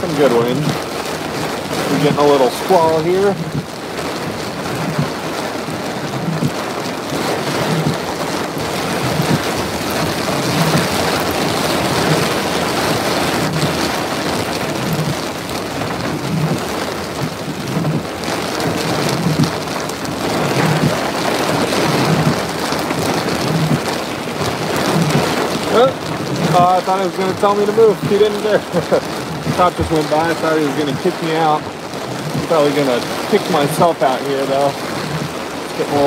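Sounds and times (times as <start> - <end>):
heavy rain and wind: 0.0 - 36.0
soft low thump: 29.4 - 30.4.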